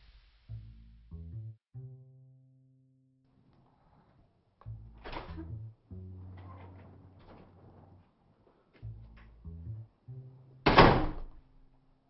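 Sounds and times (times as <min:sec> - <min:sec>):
door shutting thud: 0:10.7 - 0:11.4.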